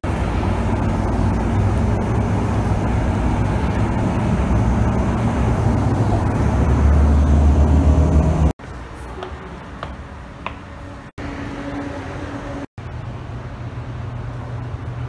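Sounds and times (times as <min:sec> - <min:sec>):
rumbling tyre noise: 0:00.0 - 0:08.9
bus engine drone: 0:00.0 - 0:15.0.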